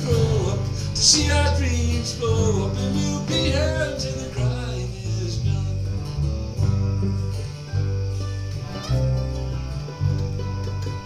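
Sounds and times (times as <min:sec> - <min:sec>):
person singing: 0:00.0 - 0:06.2
acoustic guitar: 0:00.0 - 0:11.0
bluegrass band playing: 0:00.0 - 0:11.0.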